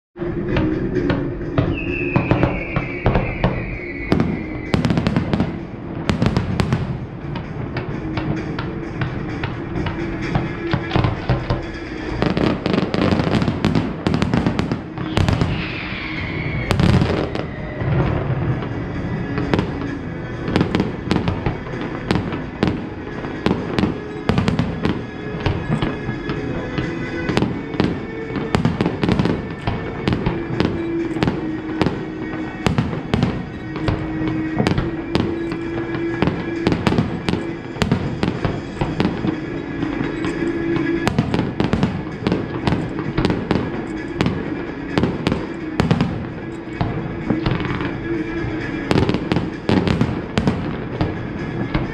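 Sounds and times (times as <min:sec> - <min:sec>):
falling firework whistle: 0:00.2 - 0:51.9.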